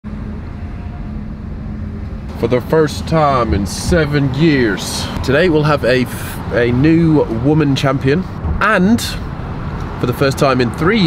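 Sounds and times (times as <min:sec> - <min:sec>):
tyres on road: 0:00.0 - 0:11.0
car engine hum inside cabin: 0:00.1 - 0:11.0.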